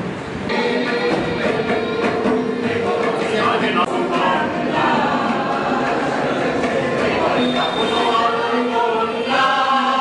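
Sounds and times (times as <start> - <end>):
choir singing: 0.5 - 10.0.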